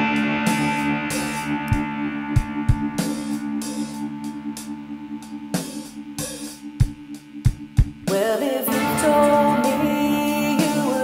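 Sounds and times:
bass drum hits: 0.0s - 4.4s
electric mandolin chord: 0.0s - 7.4s, 8.6s - 11.0s
hi-hat pattern: 0.0s - 8.1s.

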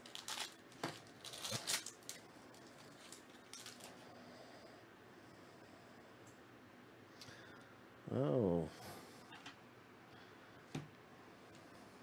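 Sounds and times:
foil wrapper crinkling and tearing: 0.0s - 4.0s.

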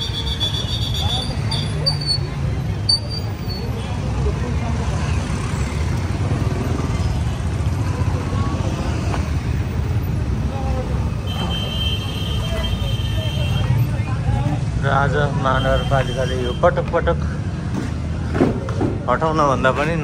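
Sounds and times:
crowd chatter: 0.0s - 20.0s
traffic: 0.0s - 20.0s.

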